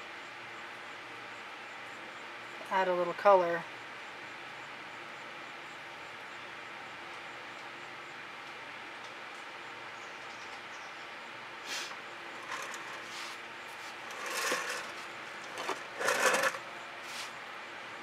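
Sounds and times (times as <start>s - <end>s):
faint hiss: 11.6s - 12.0s.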